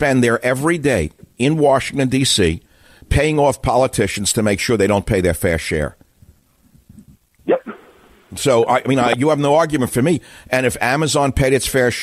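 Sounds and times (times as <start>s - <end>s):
faint low background noise: 0.0s - 12.0s
person speaking over telephone: 8.4s - 9.4s.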